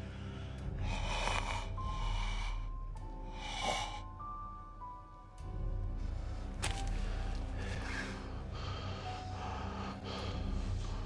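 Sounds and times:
heavy breathing with gasps: 0.0s - 4.2s, 6.2s - 11.0s.

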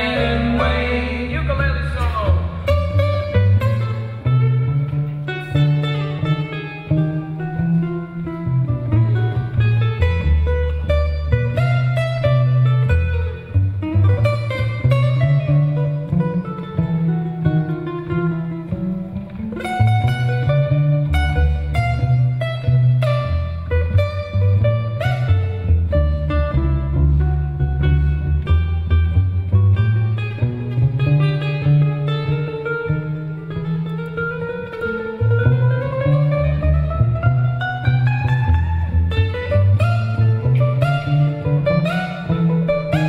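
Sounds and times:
plucked cello bass line: 0.0s - 43.0s
ukulele playing jazz: 0.0s - 43.0s.

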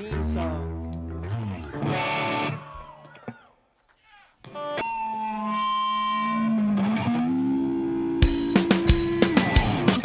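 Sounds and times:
distorted electric guitar: 0.0s - 3.3s, 4.5s - 10.0s.

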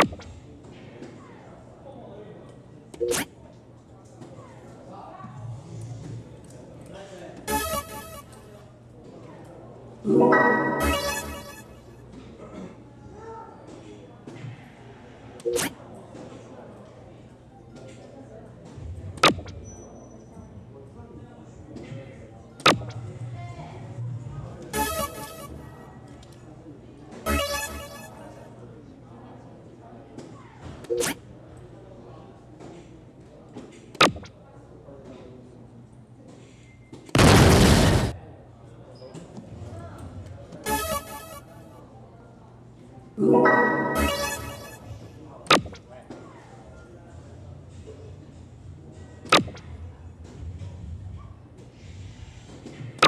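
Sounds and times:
crowd chatter: 0.0s - 35.7s, 39.1s - 49.7s
high electronic tone: 7.5s - 8.4s, 10.1s - 11.9s, 24.8s - 25.6s, 27.3s - 28.3s, 40.7s - 41.6s, 43.2s - 45.1s.

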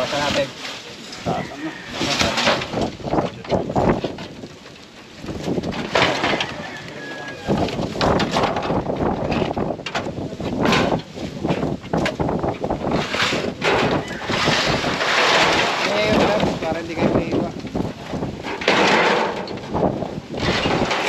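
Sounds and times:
metal roofing sheets scraping: 0.0s - 21.0s
wooden planks knocking: 1.9s - 21.0s
loud metal clatter: 5.6s - 6.8s, 11.9s - 17.5s, 18.4s - 21.0s.

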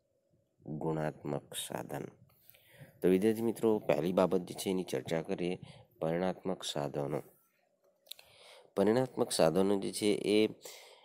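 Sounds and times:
lecturer speaking: 0.7s - 2.2s, 3.0s - 7.3s.

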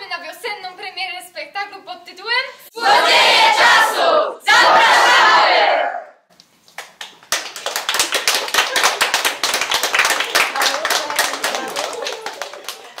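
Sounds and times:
people applauding: 6.8s - 13.0s.

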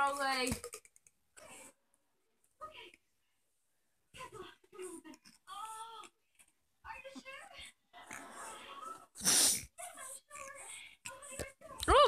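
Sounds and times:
short blast of breath: 9.2s - 9.7s.

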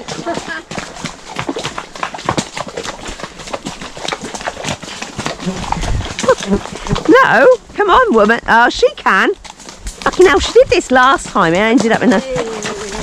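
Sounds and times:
horse hooves splashing in mud: 0.0s - 13.0s.

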